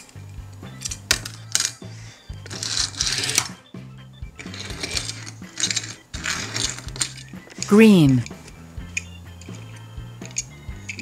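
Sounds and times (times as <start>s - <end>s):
background music: 0.0s - 11.0s
toy car rattling scrape: 0.7s - 3.6s, 4.3s - 7.7s
toy cars clicking on tabletop: 0.8s - 3.6s, 4.4s - 11.0s.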